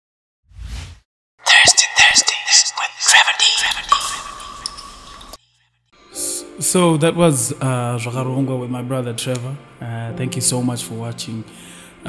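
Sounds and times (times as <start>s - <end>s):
burst of clicks and voice effects: 1.5s - 4.0s.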